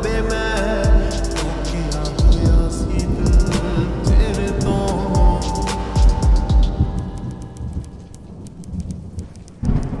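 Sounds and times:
thunder rumble: 0.0 - 10.0
rain: 6.8 - 10.0.

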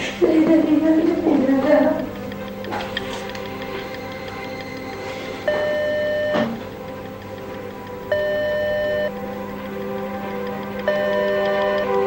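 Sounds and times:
soft background music: 0.0 - 12.0
telephone ringback tone: 3.7 - 6.7, 8.0 - 9.2, 10.9 - 12.0.

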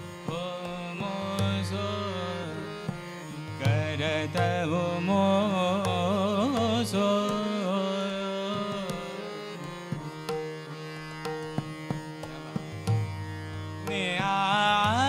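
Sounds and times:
harmonium held notes: 0.0 - 15.0
tanpura drone: 0.0 - 15.0
person singing classical vocal: 0.2 - 2.7, 3.6 - 9.7, 13.9 - 15.0.

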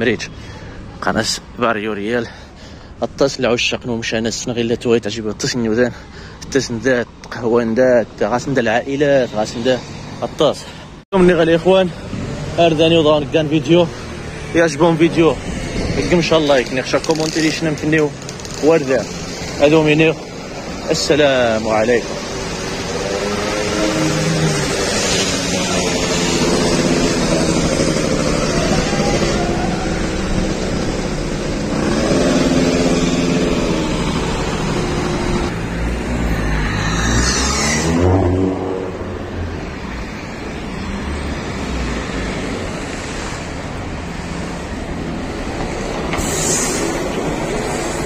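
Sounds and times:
cars passing: 0.0 - 48.0
vehicle passing with deep rumble: 11.2 - 48.0.

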